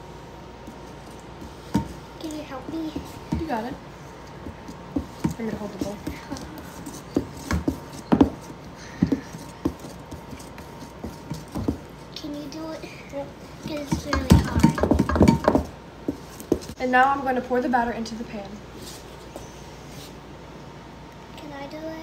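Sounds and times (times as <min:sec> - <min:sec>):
wooden spoon stirring thick batter: 0:04.4 - 0:12.1.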